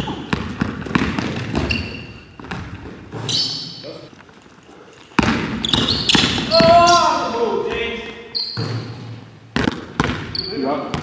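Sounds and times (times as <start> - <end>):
basketball bouncing on wooden floor: 0.0 - 3.5, 5.1 - 7.0, 8.5 - 11.0
sneakers squeaking: 0.0 - 11.0.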